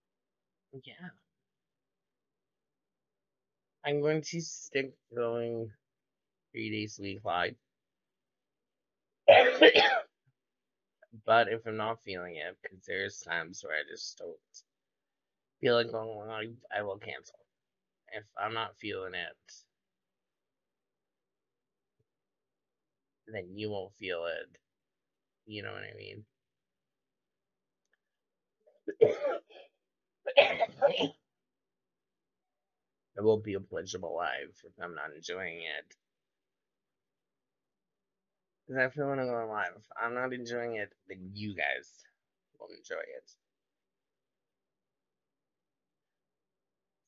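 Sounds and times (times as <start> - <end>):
person coughing: 9.3 - 10.0, 28.9 - 29.6, 30.3 - 31.1.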